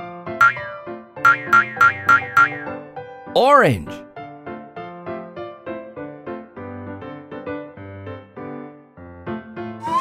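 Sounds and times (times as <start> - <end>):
cartoon boing sound effects: 0.4 - 2.7.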